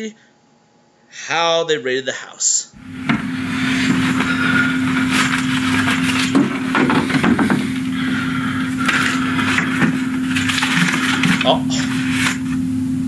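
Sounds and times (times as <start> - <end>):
rustling and knocks on shelf: 2.8 - 12.6
low hum: 2.8 - 13.0.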